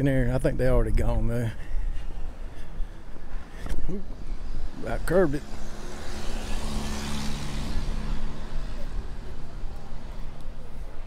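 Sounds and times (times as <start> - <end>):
traffic engine hum: 0.0 - 11.0
faint voices: 8.0 - 11.0.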